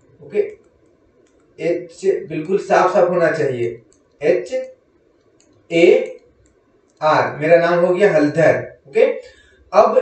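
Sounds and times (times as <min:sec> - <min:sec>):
faint clicks: 0:00.0 - 0:01.6, 0:03.8 - 0:07.1.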